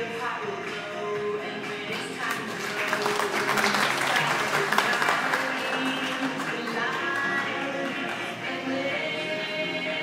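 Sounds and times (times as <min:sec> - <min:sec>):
performance music: 0:00.0 - 0:10.0
audience applauding: 0:02.3 - 0:08.2.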